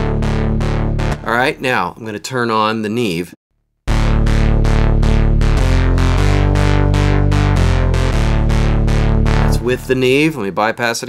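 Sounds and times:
synthesizer arpeggio: 0.0s - 1.6s, 3.9s - 10.6s
held synth bass: 0.0s - 1.7s, 3.9s - 10.6s.

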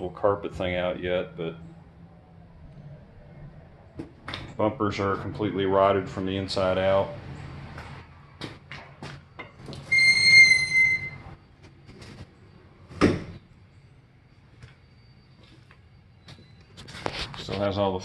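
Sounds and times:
high steady squeak: 9.8s - 11.4s.

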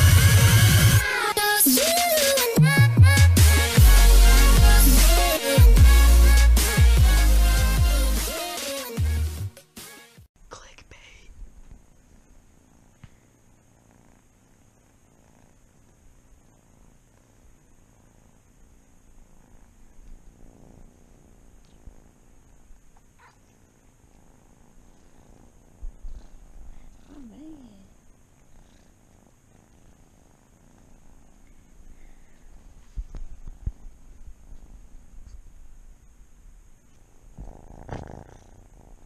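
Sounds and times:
kittens purring: 10.5s - 39.0s
kitten mewing: 23.0s - 23.6s, 26.7s - 27.9s.

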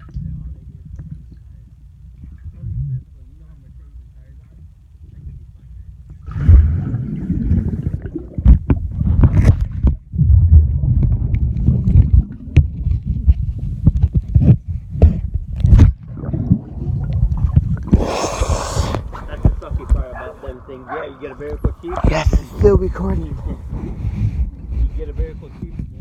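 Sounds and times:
underwater sloshing and rumble: 0.0s - 26.0s
water splashing: 16.0s - 24.0s.

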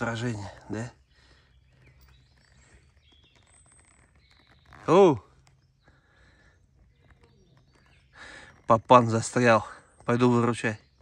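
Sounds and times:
distant birds calling: 0.0s - 11.0s.

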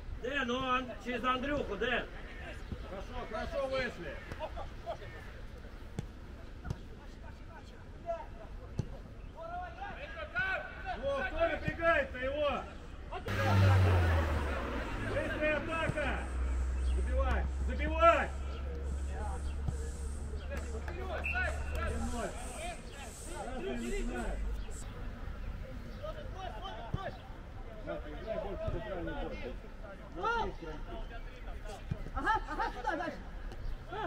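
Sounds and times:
steady low rumble: 13.3s - 20.9s
distant voices calling out: 13.3s - 27.5s.

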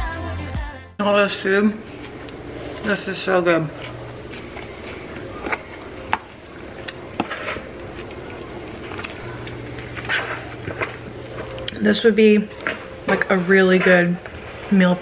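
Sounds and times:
low steady hum: 1.0s - 15.0s.

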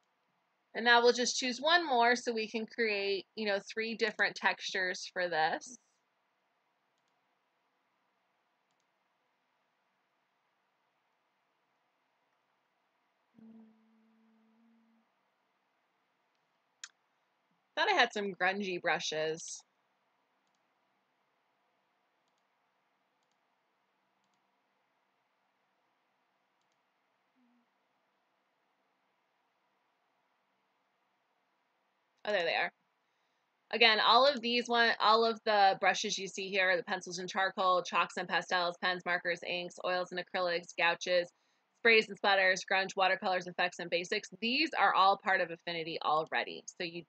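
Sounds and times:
faint computer mouse clicks: 8.7s - 8.9s, 20.4s - 20.6s, 22.2s - 22.5s, 23.2s - 23.4s, 24.2s - 24.4s, 26.6s - 26.8s.

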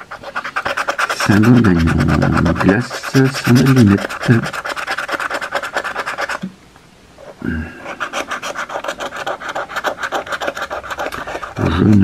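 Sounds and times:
metal edge scraping lottery ticket: 0.0s - 6.4s, 7.8s - 12.0s.

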